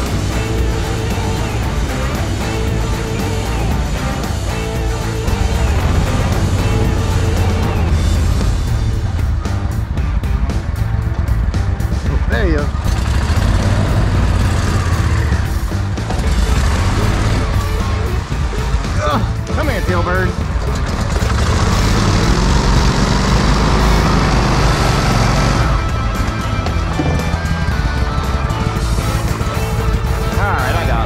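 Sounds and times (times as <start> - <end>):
boat motor running: 0.0 - 31.0
music: 0.0 - 31.0.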